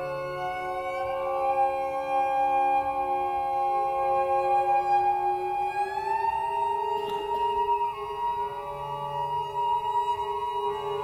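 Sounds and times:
bowed cello notes: 0:00.0 - 0:11.0.

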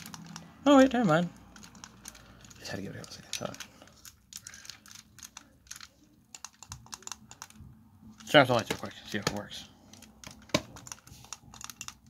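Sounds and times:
plastic clicks and taps: 0:08.6 - 0:09.5, 0:10.2 - 0:12.0.

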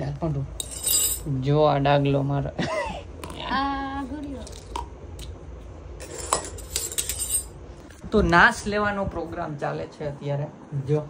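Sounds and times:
metal utensils clinking on tiles: 0:00.6 - 0:01.3, 0:06.0 - 0:07.6.

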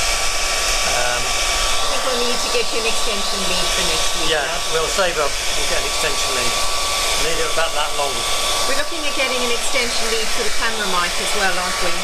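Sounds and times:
hairdryer blowing: 0:00.0 - 0:12.0.

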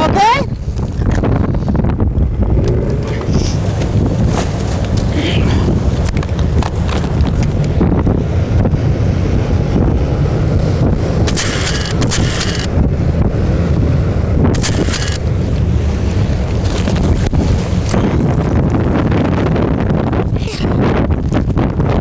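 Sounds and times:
boat engine and hull rumbling: 0:00.0 - 0:22.0
wind buffeting microphone: 0:00.0 - 0:22.0.

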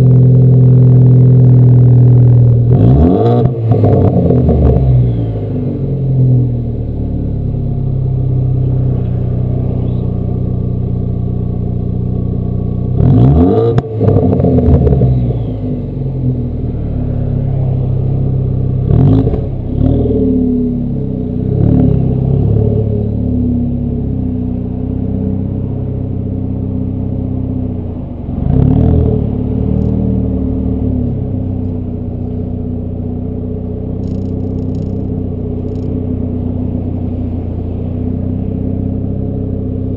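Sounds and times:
car engine low drone: 0:00.0 - 0:39.9.

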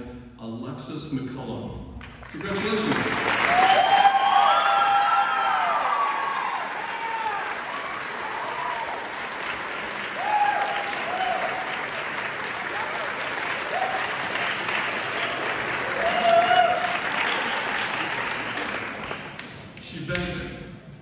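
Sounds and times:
audience applauding: 0:02.1 - 0:19.8.

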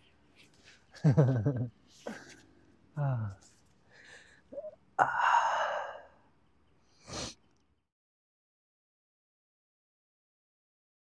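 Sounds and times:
man sighing: 0:03.0 - 0:03.4, 0:04.0 - 0:06.1.

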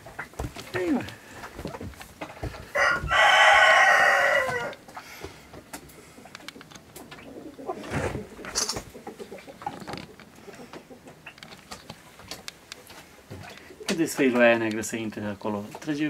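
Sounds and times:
rooster crowing: 0:02.7 - 0:04.8.

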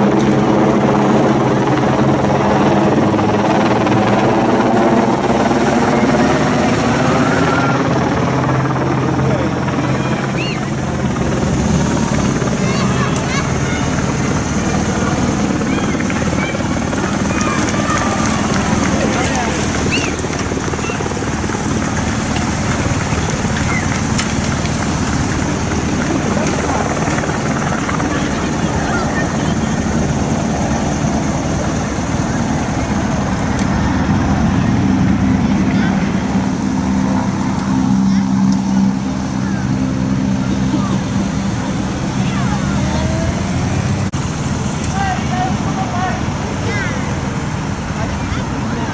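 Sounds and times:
low engine drone: 0:00.0 - 0:48.9
spectators' voices: 0:00.5 - 0:48.9
motorcycle engine passing: 0:03.0 - 0:48.9.

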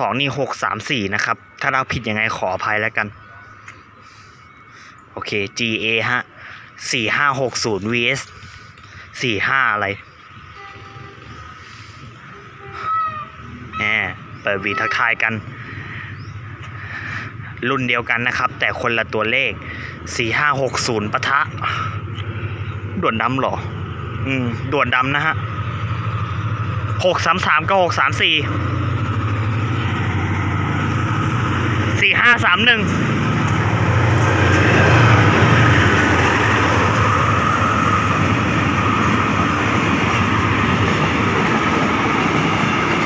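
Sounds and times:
diesel locomotive engine droning: 0:00.0 - 0:43.0
train rumble: 0:00.0 - 0:43.0
locomotive horn: 0:10.5 - 0:15.5.

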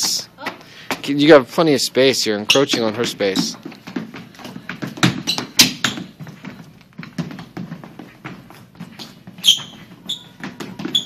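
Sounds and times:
sneakers stamping on wooden floor: 0:00.0 - 0:11.0
high squeak: 0:09.4 - 0:11.0.

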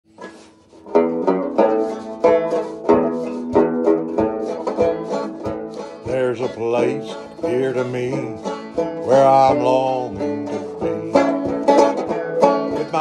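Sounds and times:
banjo playing: 0:00.1 - 0:13.0.

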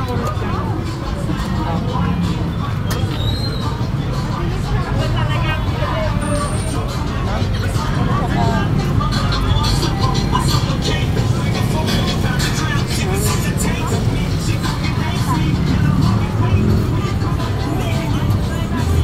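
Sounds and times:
chatter of many voices: 0:00.0 - 0:19.0
low traffic rumble: 0:00.0 - 0:19.0.

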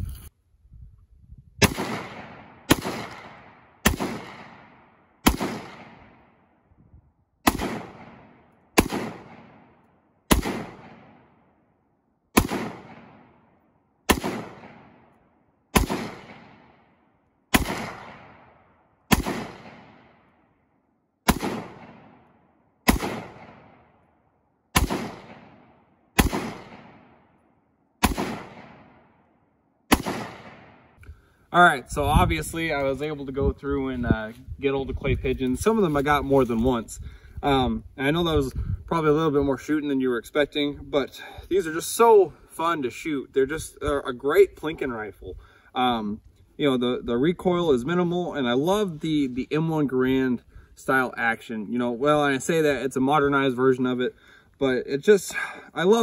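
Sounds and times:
rifle shots with echo: 0:01.6 - 0:06.7, 0:07.4 - 0:31.0.

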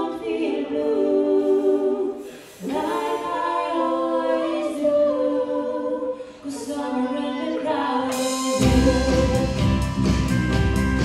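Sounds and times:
woman singing through pa: 0:06.4 - 0:09.8.

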